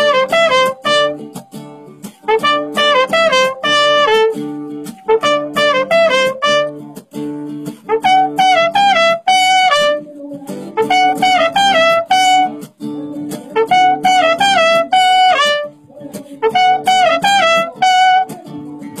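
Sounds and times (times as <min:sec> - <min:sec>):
guitar accompaniment: 0:00.0 - 0:19.0
trumpet playing melodic phrases: 0:00.0 - 0:19.0.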